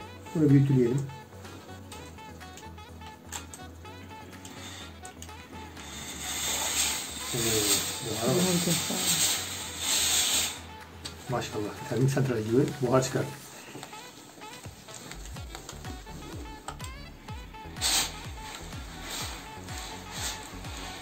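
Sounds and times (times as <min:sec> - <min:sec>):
steam iron hissing: 0:04.1 - 0:16.5, 0:17.6 - 0:21.0.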